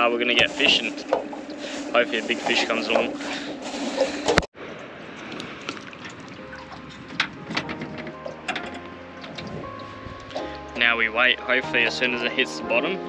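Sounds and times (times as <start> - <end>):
background music with held tones: 6.4 - 13.0.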